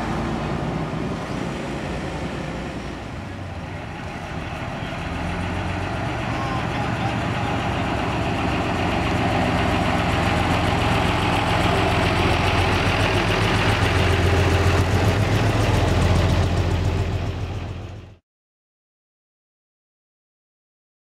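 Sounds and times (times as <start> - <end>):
coach engine passing slowly: 0.0 - 18.2.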